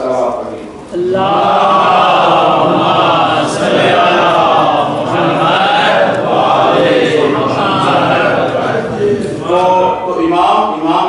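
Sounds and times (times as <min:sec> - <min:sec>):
men chanting in unison: 0:00.9 - 0:10.7.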